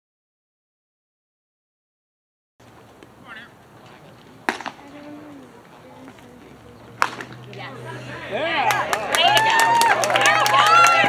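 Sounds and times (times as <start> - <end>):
faint voices: 3.2 - 11.0.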